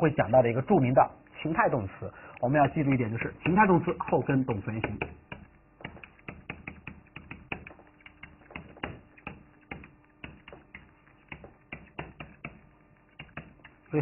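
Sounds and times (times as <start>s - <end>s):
marker tapping on whiteboard: 2.6s - 13.8s.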